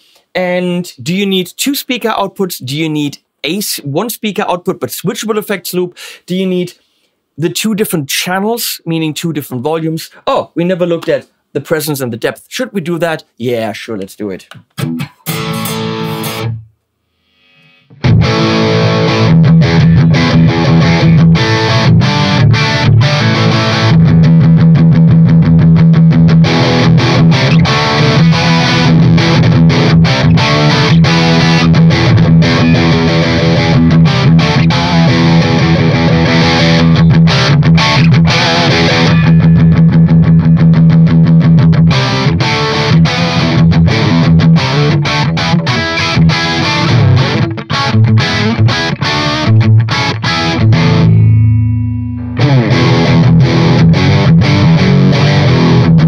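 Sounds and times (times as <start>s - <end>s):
distorted electric guitar: 14.6s - 56.0s.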